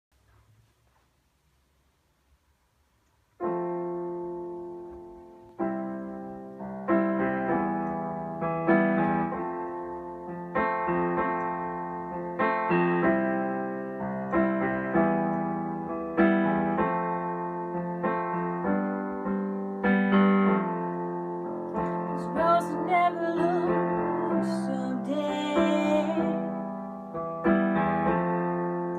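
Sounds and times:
electric keyboard piano chords: 3.0s - 28.9s
woman singing: 22.1s - 26.6s.

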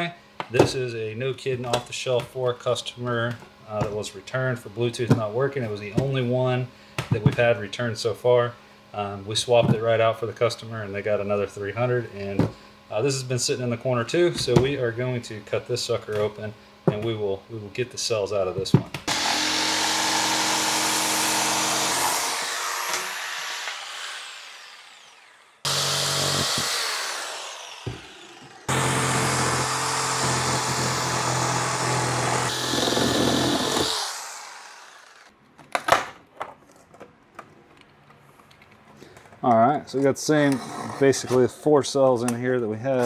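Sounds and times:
jigsaw cutting plastic case: 19.1s - 35.3s.

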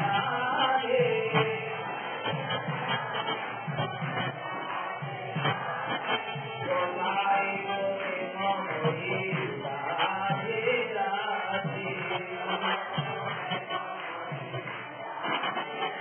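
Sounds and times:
steady drum beat: 0.0s - 16.0s
voices chanting and singing: 0.0s - 16.0s.

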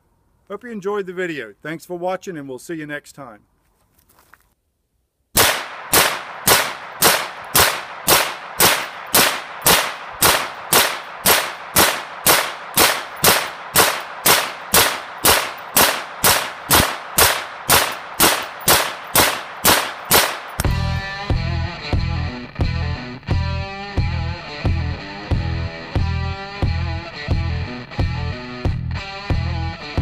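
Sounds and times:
rifle shots with ringing tail: 5.4s - 20.8s.

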